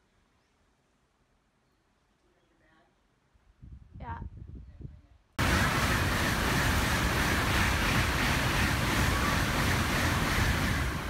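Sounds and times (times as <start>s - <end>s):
heavy rain: 5.4s - 11.0s.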